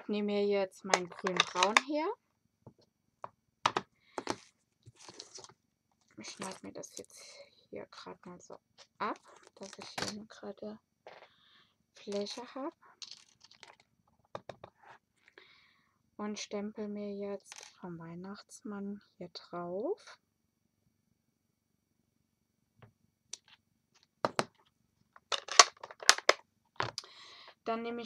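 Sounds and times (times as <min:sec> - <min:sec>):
paper rustle: 0:04.3 - 0:05.5.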